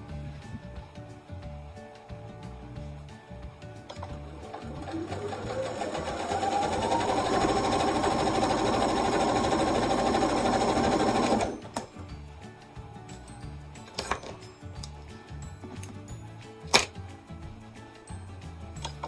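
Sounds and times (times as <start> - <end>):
sewing machine motor whine: 4.5 - 11.7.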